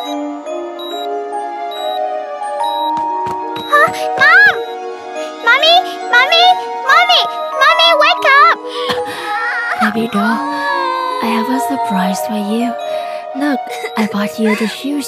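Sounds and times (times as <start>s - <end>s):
background music with held notes: 0.0s - 15.0s
child crying: 3.7s - 4.6s, 7.6s - 12.8s, 13.5s - 15.0s.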